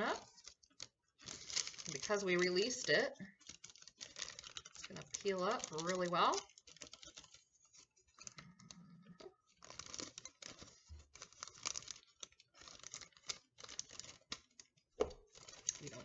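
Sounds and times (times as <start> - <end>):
plastic and paper crinkling: 0.0 - 16.0.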